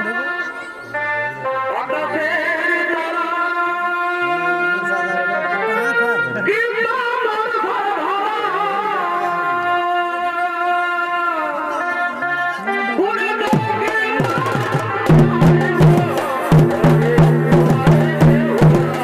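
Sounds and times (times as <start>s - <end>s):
shehnai playing wavering melody: 0.0s - 1.9s, 3.4s - 6.5s
dhol drum strokes: 13.4s - 19.0s
loud rhythmic drumbeat: 13.4s - 19.0s.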